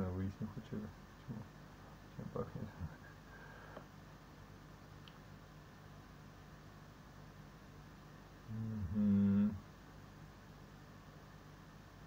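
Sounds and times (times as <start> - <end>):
faint background hum: 0.0 - 12.0
man humming agreement: 8.4 - 9.6.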